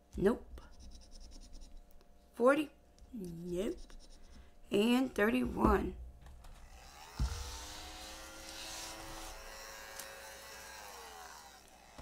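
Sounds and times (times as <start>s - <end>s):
small electric motor humming: 6.5s - 12.0s
thump: 7.2s - 7.6s.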